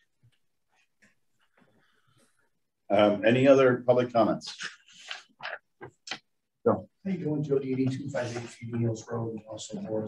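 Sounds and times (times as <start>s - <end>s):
man speaking: 6.6s - 10.0s.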